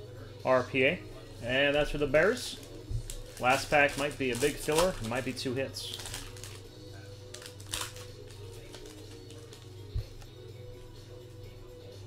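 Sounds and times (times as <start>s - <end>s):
quiet background music: 0.0s - 12.0s
wrapper crinkling and clicking: 2.4s - 10.3s.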